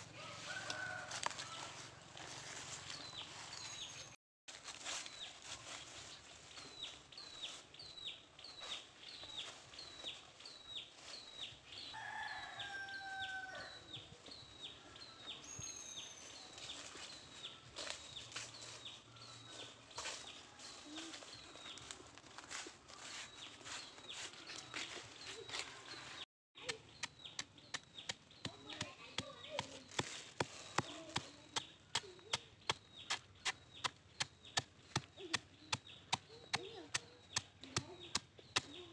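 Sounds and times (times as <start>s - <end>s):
rooster crowing: 0.1s - 1.9s, 11.9s - 13.8s.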